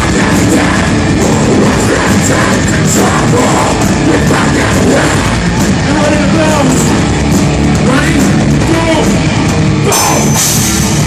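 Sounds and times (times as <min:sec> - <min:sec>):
bass guitar: 0:00.0 - 0:11.0
distorted electric guitars: 0:00.0 - 0:11.0
drum kit: 0:00.0 - 0:11.0.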